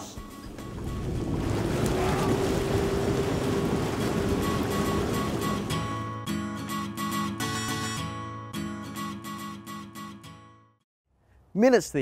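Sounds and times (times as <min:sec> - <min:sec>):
hot tub jets bubbling: 0:00.6 - 0:05.9.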